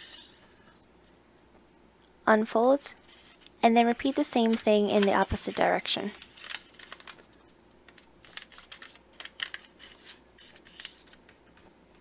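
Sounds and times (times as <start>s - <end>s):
paper rustling and crackling: 3.0s - 11.7s.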